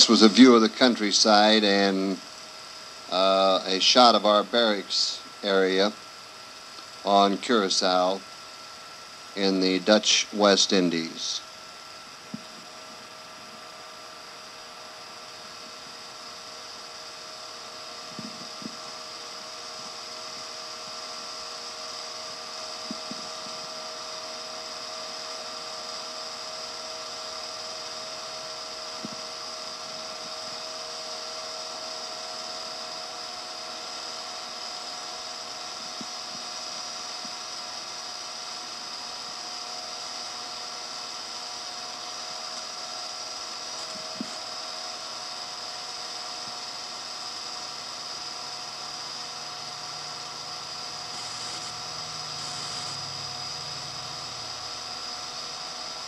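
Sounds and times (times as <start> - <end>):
small motor whirring and whining: 0.0 - 56.0.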